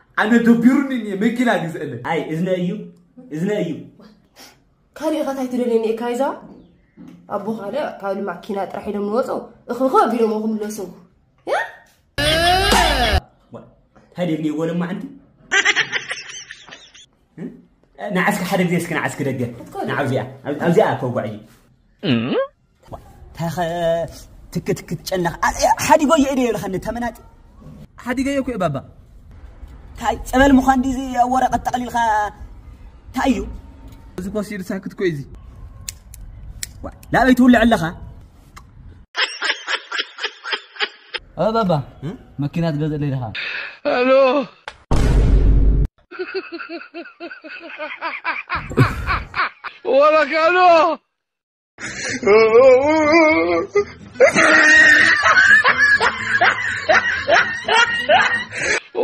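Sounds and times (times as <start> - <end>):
snickering laughter: 46.1 - 49.9, 53.8 - 59.0.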